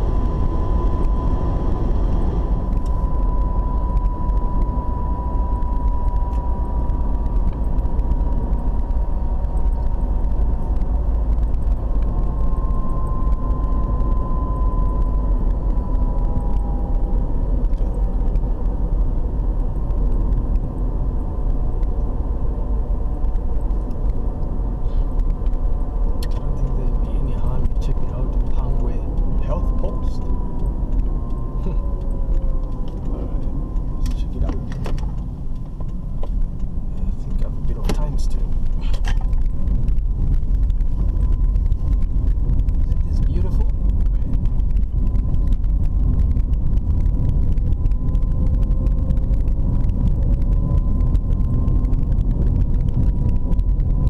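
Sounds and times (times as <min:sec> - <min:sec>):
car engine and tyre rumble: 0:00.0 - 0:54.0.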